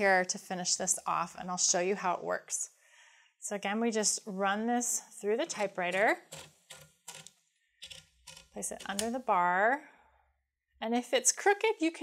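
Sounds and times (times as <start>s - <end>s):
typewriter platen clicking: 5.5s - 9.2s.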